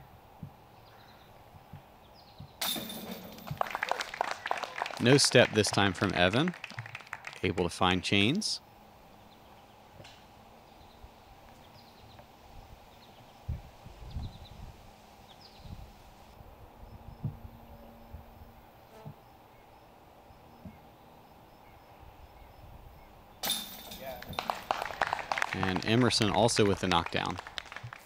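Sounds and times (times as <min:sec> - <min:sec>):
spectators clapping: 0:03.3 - 0:08.4, 0:24.0 - 0:28.0.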